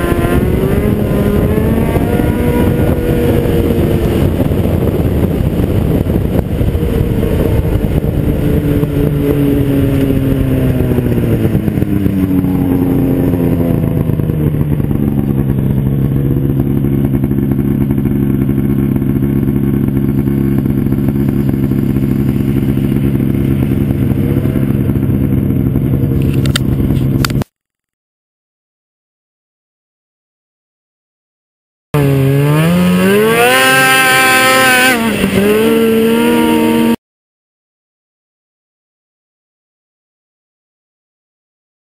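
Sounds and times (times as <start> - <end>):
snowmobile engine running: 0.0 - 27.5, 32.0 - 37.0.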